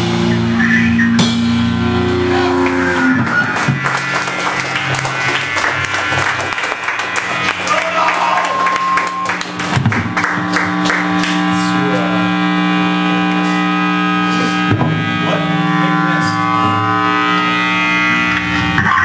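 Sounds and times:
drum kit cymbal and drum hits: 0:00.0 - 0:02.9
electric guitar droning tones: 0:00.0 - 0:19.0.

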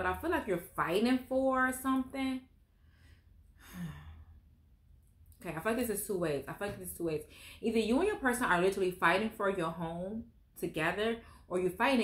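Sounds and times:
woman sighing: 0:03.6 - 0:04.3.

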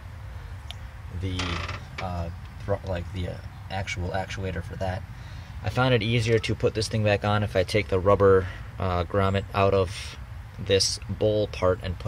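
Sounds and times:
steady low rumble: 0:00.0 - 0:12.0
man talking: 0:01.1 - 0:12.0.

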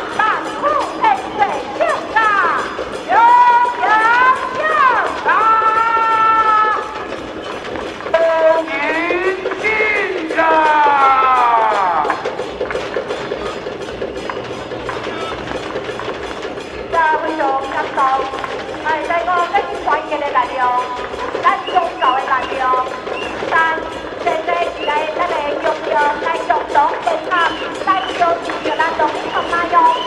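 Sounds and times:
clacking beat: 0:00.0 - 0:30.0
held music tone: 0:00.0 - 0:30.0.

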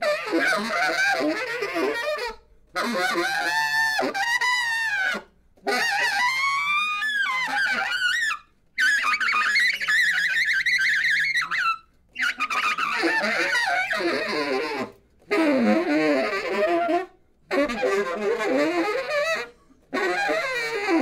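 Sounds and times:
free jazz saxophone: 0:00.0 - 0:21.0.

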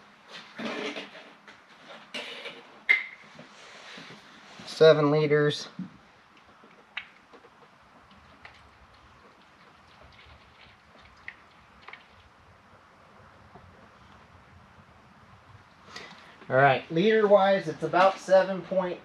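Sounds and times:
oil pouring into funnel: 0:07.3 - 0:12.4.

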